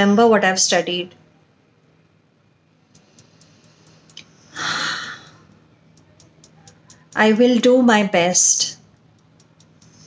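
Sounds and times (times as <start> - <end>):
fingertips tapping together: 2.8 - 7.7, 8.8 - 10.0
breath: 3.0 - 5.4.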